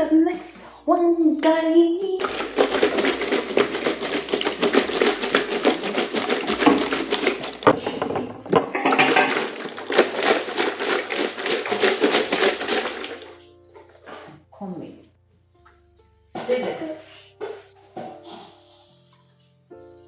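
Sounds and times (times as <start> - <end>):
upbeat music with bass line: 0.0 - 10.6.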